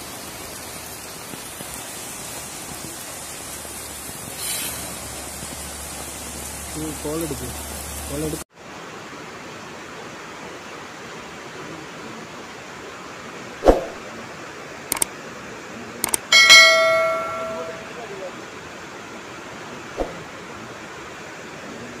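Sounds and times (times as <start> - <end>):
steady rushing hiss: 0.0 - 22.0
ringing metallic strike: 16.3 - 18.0.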